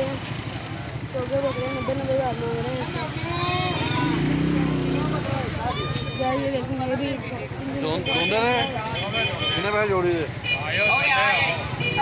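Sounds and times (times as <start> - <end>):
small engine rumbling: 0.0 - 8.0.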